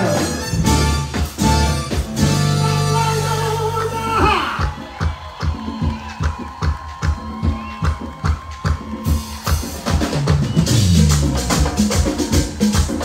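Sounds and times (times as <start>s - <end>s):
bass guitar notes: 0.0s - 4.8s.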